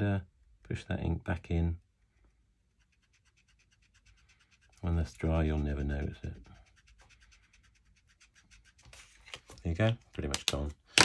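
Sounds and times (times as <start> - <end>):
pen nib scratching on card: 2.7 - 9.3.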